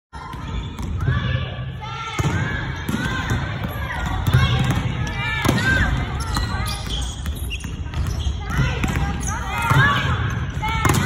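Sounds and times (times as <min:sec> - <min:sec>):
volleyballs hit and bouncing: 0:00.2 - 0:11.0.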